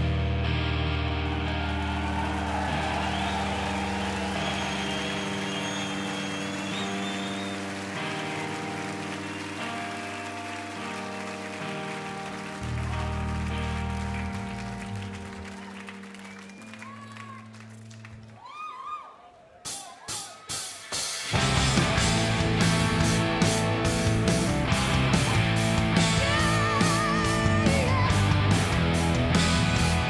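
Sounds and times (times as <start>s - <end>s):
live rock band guitar and bass: 0.0s - 16.8s, 21.0s - 30.0s
crowd cheering and applauding: 0.6s - 30.0s.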